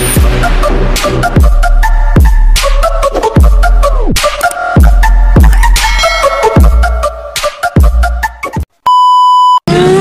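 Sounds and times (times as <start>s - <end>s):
rhythmic electronic music: 0.0s - 8.7s.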